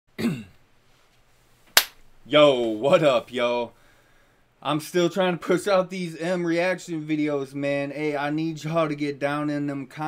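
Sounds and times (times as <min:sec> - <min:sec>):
hand clap: 0:01.7 - 0:02.0.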